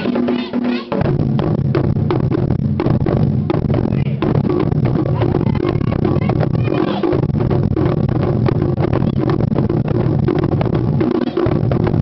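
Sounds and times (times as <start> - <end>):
large drums deep beats: 0.0 - 12.0.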